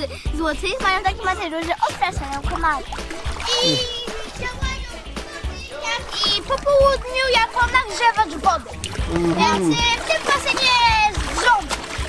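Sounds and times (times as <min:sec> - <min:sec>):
background music: 0:00.0 - 0:12.0
children talking: 0:00.0 - 0:12.0
water splashing in pool: 0:00.6 - 0:12.0.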